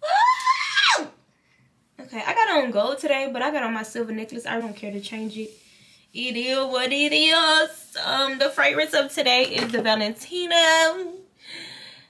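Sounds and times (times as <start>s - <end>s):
woman's high-pitched exclamation: 0.0s - 1.1s.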